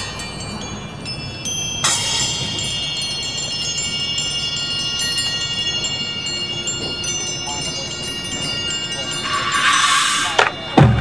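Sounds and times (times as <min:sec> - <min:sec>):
metallic mallet percussion and chimes: 0:00.0 - 0:11.0.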